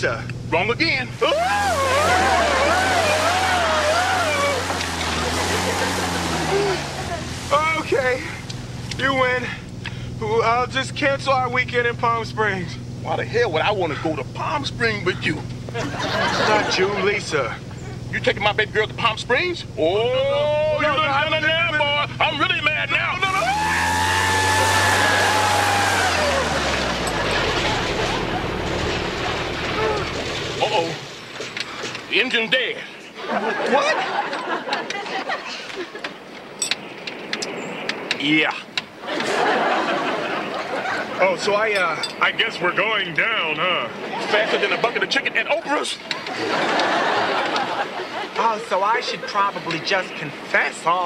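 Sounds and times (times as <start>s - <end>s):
propeller plane engine droning: 0.0s - 51.0s
studio audience laughing: 1.4s - 7.2s, 15.7s - 17.2s, 23.5s - 29.8s, 33.2s - 36.2s, 39.0s - 41.2s, 44.0s - 45.1s, 46.1s - 49.8s.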